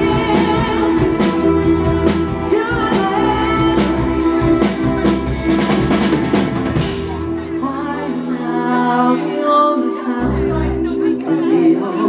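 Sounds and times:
woman singing: 0.0s - 5.1s, 7.4s - 12.0s
bass guitar: 0.0s - 8.3s, 10.1s - 12.0s
drum kit: 0.0s - 12.0s
electric guitar: 0.0s - 12.0s
keyboard: 0.0s - 12.0s.

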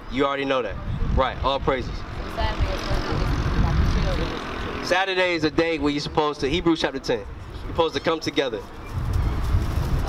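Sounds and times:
passing vehicle rushing: 1.8s - 6.3s.

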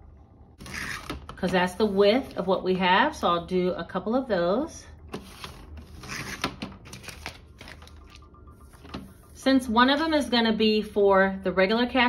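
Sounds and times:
plastic film rustling: 5.2s - 8.3s.

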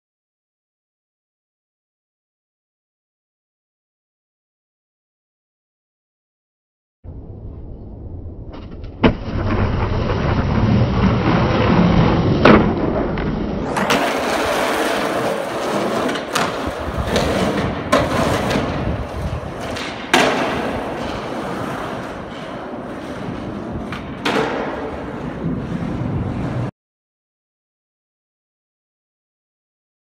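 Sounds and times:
skateboard wheels rolling: 8.6s - 26.7s
skateboard clacking on ground: 13.6s - 26.7s.

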